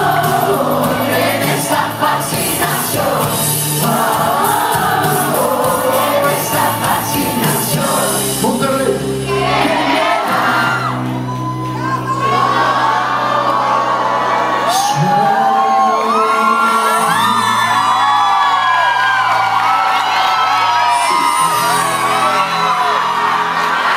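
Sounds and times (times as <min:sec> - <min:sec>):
audience whooping and cheering: 0:00.0 - 0:08.3, 0:09.3 - 0:23.9
live band playing: 0:00.0 - 0:12.6.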